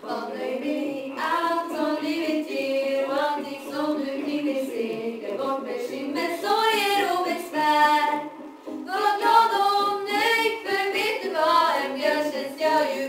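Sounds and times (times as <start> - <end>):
girls singing into microphones: 0.0 - 13.0.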